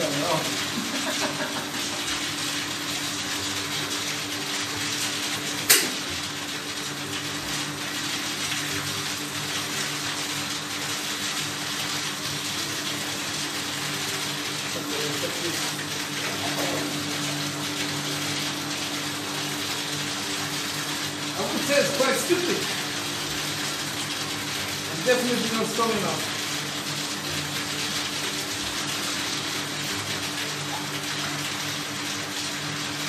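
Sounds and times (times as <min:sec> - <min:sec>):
jet pump humming: 0:00.0 - 0:33.0
sharp click: 0:05.7 - 0:06.0.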